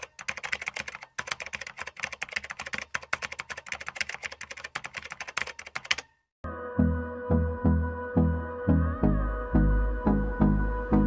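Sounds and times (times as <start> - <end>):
rapid keyboard typing clicks: 0.0 - 6.1.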